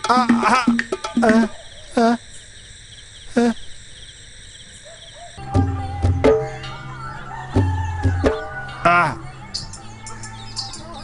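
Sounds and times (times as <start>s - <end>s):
crickets chirping: 0.0s - 11.0s
wavering vocal cries: 5.4s - 9.4s.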